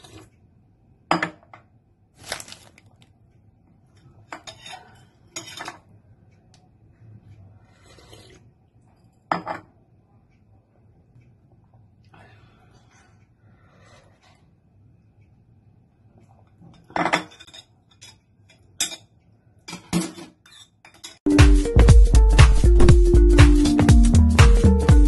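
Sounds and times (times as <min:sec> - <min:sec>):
utensils clinking against bowl: 0:04.3 - 0:05.9, 0:16.7 - 0:21.3.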